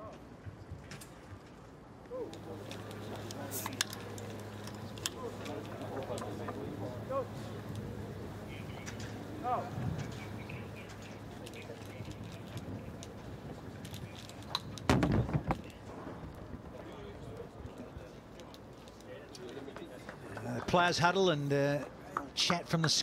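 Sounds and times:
indistinct voices talking: 2.1s - 22.9s
bird calling: 4.0s - 12.5s.

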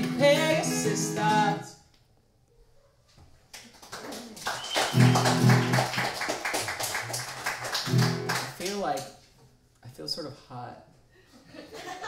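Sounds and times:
acoustic guitar strumming: 0.0s - 1.7s, 4.9s - 5.8s, 7.9s - 8.4s.

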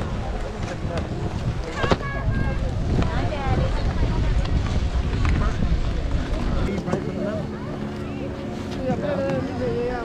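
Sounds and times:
people chatting: 0.0s - 10.0s
wind rumbling on microphone: 0.0s - 10.0s.

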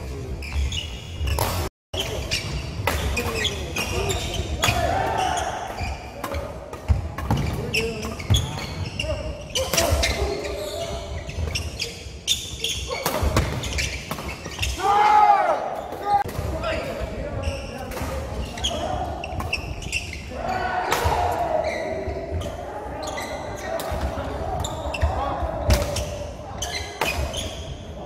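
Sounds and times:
shoes squeaking on wooden court: 0.0s - 14.8s, 17.2s - 28.0s
voices echoing in hall: 2.0s - 28.0s.

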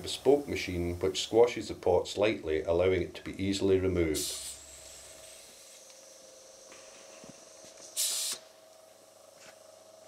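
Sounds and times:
faint steady hum: 0.0s - 10.0s
short sharp hiss of released air: 4.2s - 5.7s, 7.8s - 8.6s.

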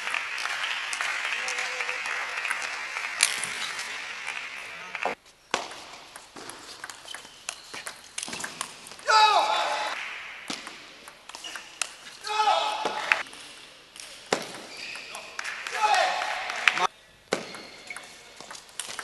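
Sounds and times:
crowd applause: 0.0s - 5.2s.

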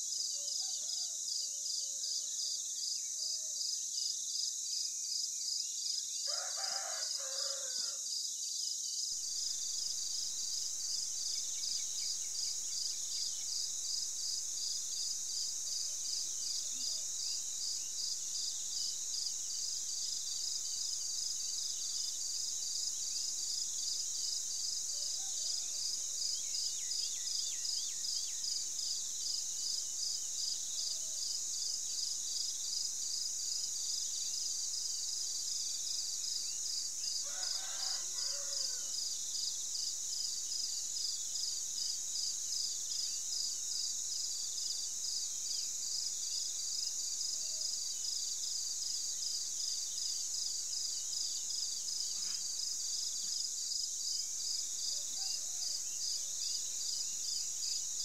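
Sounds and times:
insects chorus pulsing: 6.3s - 8.0s, 9.2s - 58.0s
rooster crowing: 6.3s - 8.0s, 37.2s - 39.0s.

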